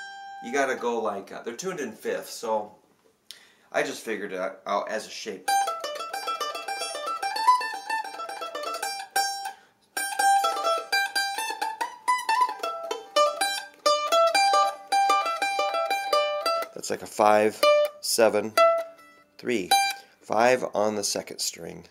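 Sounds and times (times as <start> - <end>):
mandolin picking a scale: 5.4 - 20.2.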